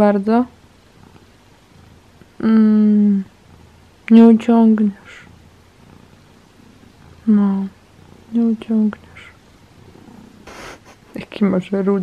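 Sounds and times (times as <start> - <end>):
cat purring: 0.0 - 12.0.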